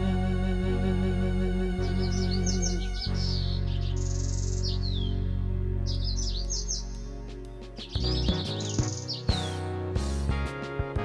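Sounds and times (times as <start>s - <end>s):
birdsong chirps: 0.0s - 10.3s
instrumental hymn accompaniment: 0.0s - 11.0s.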